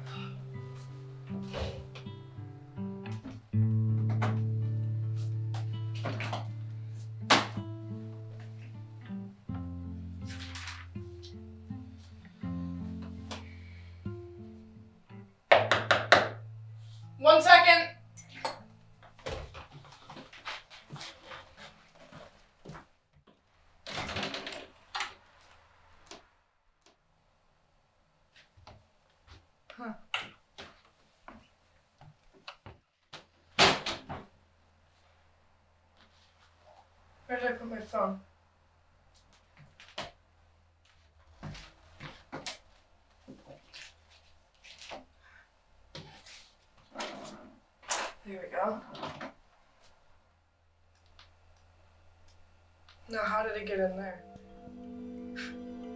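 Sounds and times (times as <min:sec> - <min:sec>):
footsteps walking away: 0:18.7 - 0:23.4, 0:40.8 - 0:45.1
wooden chair scraping: 0:46.0 - 0:47.6.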